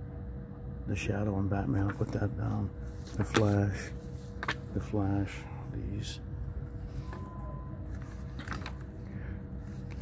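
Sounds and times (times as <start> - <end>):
steady low hum: 0.0 - 10.0
comic books rustling: 1.8 - 5.1, 6.8 - 10.0.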